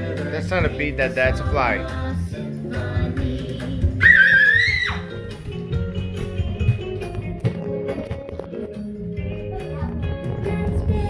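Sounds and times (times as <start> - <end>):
child squealing: 4.0 - 5.1
guitar music: 5.0 - 11.0.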